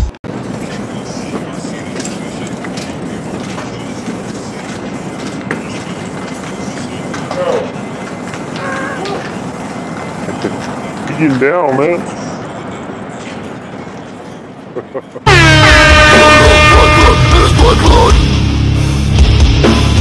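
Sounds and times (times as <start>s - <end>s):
faint voices: 0.3s - 15.2s.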